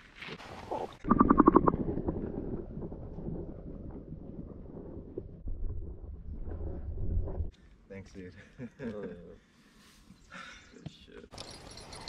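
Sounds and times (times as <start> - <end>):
underwater rumble and sloshing: 0.4 - 7.5
underwater splashing: 0.8 - 6.7.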